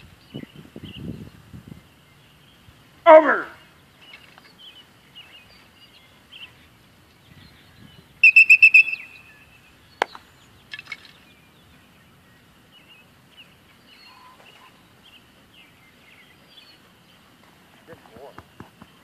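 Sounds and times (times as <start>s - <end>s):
faint birdsong chirps: 0.0s - 19.0s
dog-training whistle trill: 8.2s - 9.2s.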